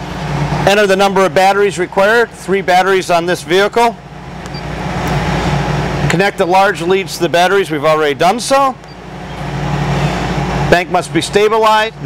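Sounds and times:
vehicle rumble with hiss: 0:06.7 - 0:12.0.

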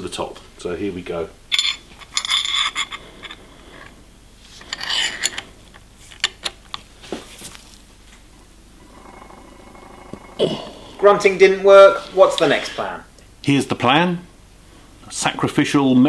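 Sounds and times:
screwdriver scraping screw: 0:01.6 - 0:03.9, 0:04.6 - 0:05.4
person grunting: 0:08.9 - 0:11.2.

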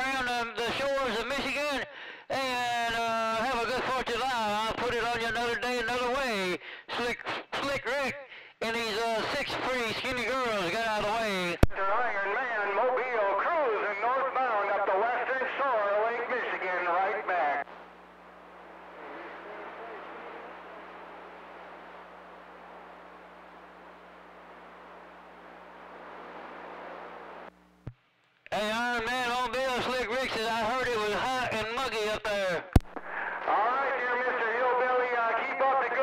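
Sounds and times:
man talking: 0:00.0 - 0:17.7, 0:19.0 - 0:21.2, 0:28.5 - 0:32.7, 0:33.4 - 0:36.0
radio channel hiss with hum: 0:00.0 - 0:36.0
voice over radio receiver: 0:08.7 - 0:17.7, 0:18.9 - 0:21.4, 0:28.5 - 0:36.0
sharp click: 0:32.8 - 0:33.0.

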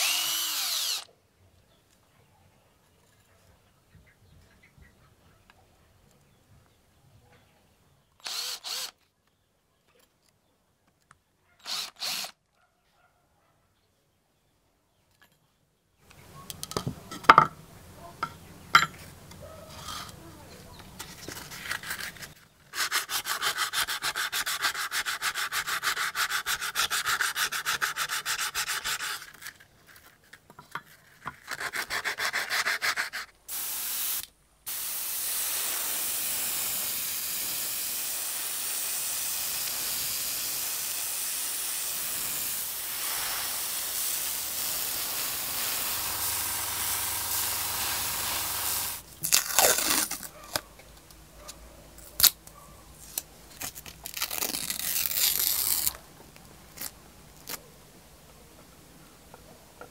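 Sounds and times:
sandpaper rubbing on metal: 0:21.3 - 0:29.4, 0:31.5 - 0:37.6, 0:38.2 - 0:49.1
steady hiss: 0:33.4 - 0:49.2.

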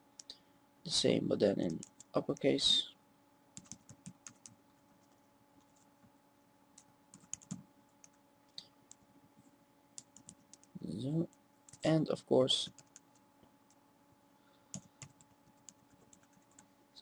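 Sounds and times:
faint steady hum: 0:00.0 - 0:17.0
computer keyboard keystrokes: 0:03.6 - 0:04.6, 0:07.1 - 0:08.2, 0:10.0 - 0:10.7, 0:12.7 - 0:13.1, 0:14.7 - 0:16.6.

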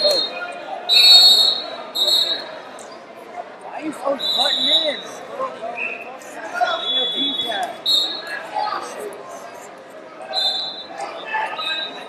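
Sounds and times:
referee whistle blasts: 0:00.0 - 0:02.5, 0:04.2 - 0:05.2, 0:05.8 - 0:08.4, 0:10.3 - 0:12.0
crowd hubbub and voices: 0:00.0 - 0:12.0.

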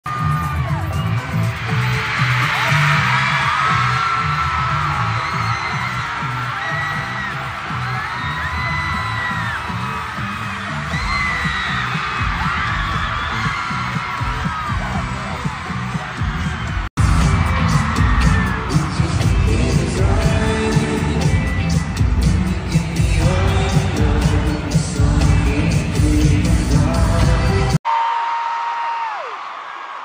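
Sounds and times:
crowd screaming and cheering: 0:00.0 - 0:30.0
low pulsing beat over speakers: 0:10.9 - 0:27.6.

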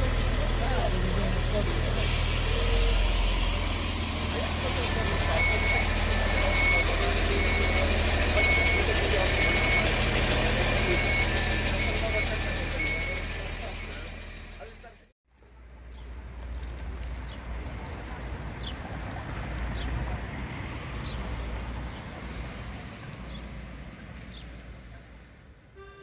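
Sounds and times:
voices: 0:00.0 - 0:15.7
diesel railcar idling: 0:00.0 - 0:20.2
street ambience: 0:00.0 - 0:26.0
two-tone electronic beep: 0:04.4 - 0:14.2.

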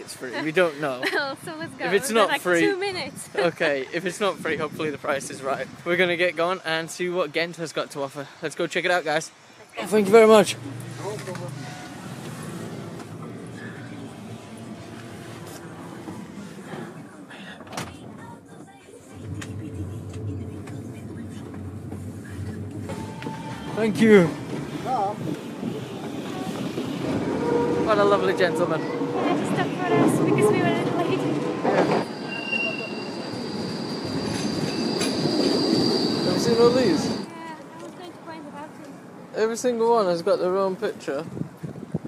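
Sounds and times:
bus engine and road rumble: 0:00.0 - 0:06.8, 0:08.8 - 0:42.0
tram wheels squealing on rails: 0:10.1 - 0:17.0, 0:20.5 - 0:37.3.

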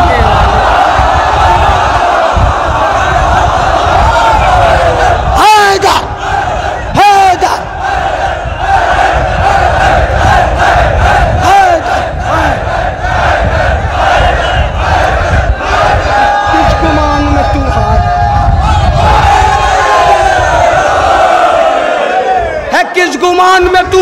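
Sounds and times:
crowd of men shouting and cheering: 0:00.0 - 0:24.0.

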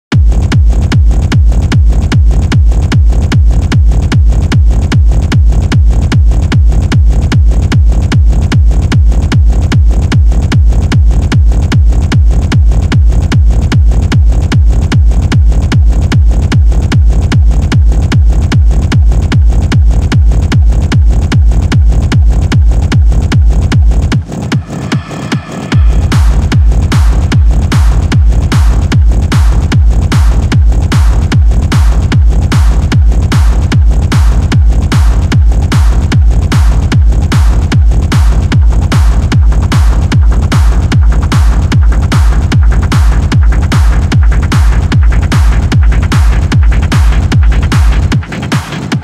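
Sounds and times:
heavy kick drum: 0:00.1 - 0:49.0
techno music: 0:00.1 - 0:49.0.

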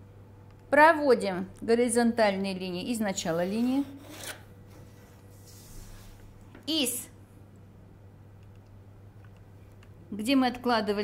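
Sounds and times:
pen scraping along metal ruler: 0:03.3 - 0:04.5.

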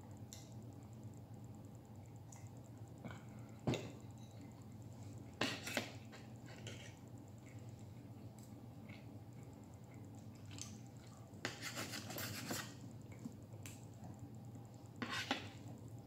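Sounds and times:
cutlery scraping on plate: 0:05.4 - 0:07.0, 0:15.0 - 0:15.6.

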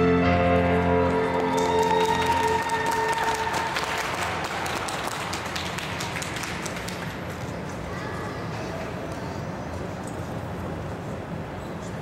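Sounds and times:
music held chord: 0:00.0 - 0:02.6
audience applause: 0:00.6 - 0:09.2.

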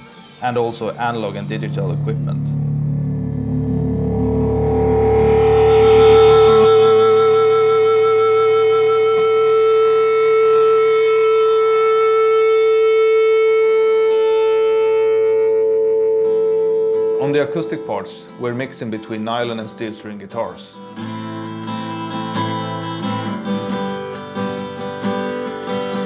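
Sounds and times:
low bass: 0:00.0 - 0:17.3
electric guitar sustained note: 0:00.0 - 0:18.7.

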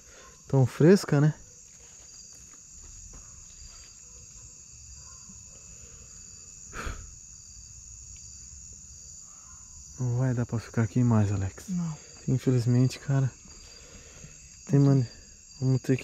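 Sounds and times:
night insects chirring: 0:00.0 - 0:16.0.

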